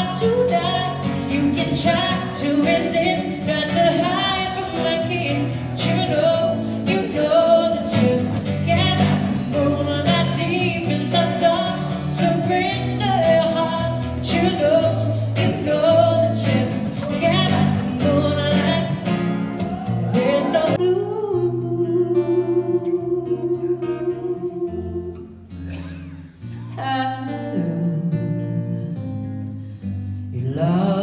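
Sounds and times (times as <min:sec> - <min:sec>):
woman singing a ballad: 0:00.0 - 0:25.3, 0:26.4 - 0:31.0.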